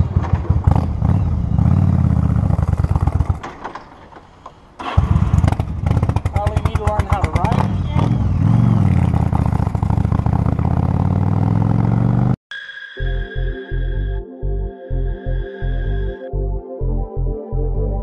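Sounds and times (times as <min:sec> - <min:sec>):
motorcycle engine pulling away: 0:00.0 - 0:04.2, 0:04.8 - 0:12.4.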